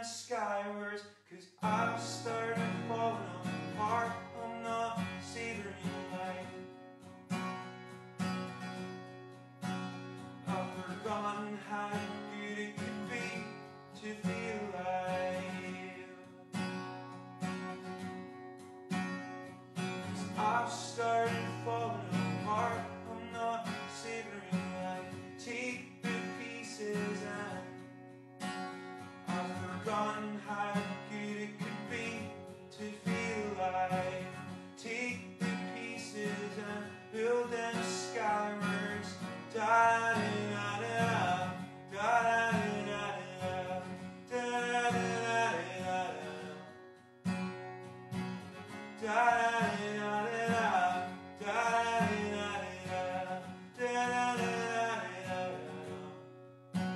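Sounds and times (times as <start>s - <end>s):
acoustic guitar playing chords: 1.6s - 56.9s.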